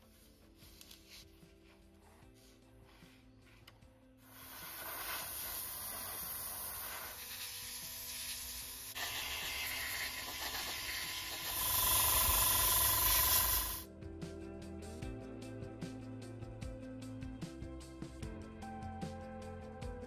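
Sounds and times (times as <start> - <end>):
airbrush spraying hiss: 4.2 - 13.8.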